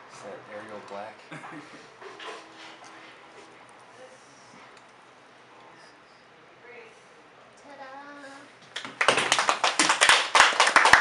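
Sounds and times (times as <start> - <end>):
people clapping: 8.7 - 11.0.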